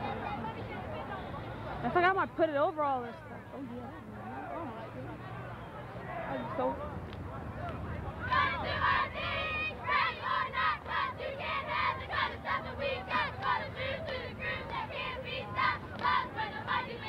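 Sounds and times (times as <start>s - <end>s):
crowd murmur: 0.0s - 17.0s
high voices chanting a cheer: 8.2s - 17.0s.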